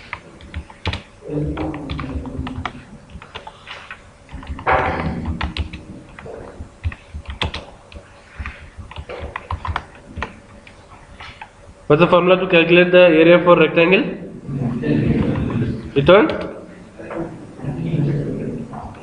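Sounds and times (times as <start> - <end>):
low voice: 1.2 - 2.8.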